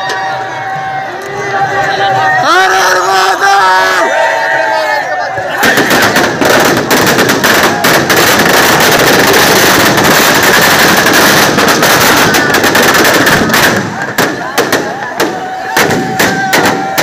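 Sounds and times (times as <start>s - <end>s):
firecrackers crackling: 5.4s - 17.0s.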